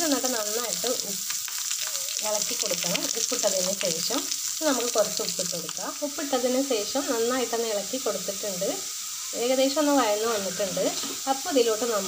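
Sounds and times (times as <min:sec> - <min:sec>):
carrot sizzling in oil: 0:00.0 - 0:12.0.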